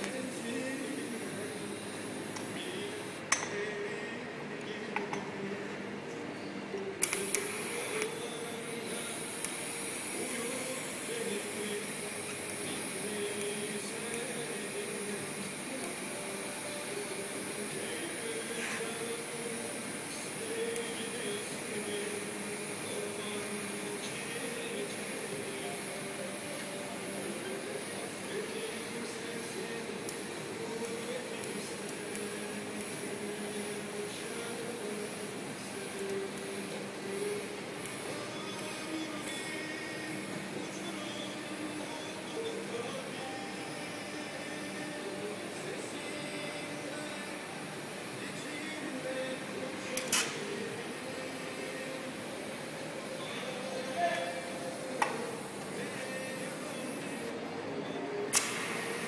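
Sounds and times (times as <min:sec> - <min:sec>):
welding arc hissing: 0:00.0 - 0:03.3, 0:07.0 - 0:57.3, 0:58.3 - 0:59.0
welding arc striking click: 0:07.0 - 0:08.2, 0:50.0 - 0:50.5, 0:55.0 - 0:55.4, 0:58.3 - 0:59.0.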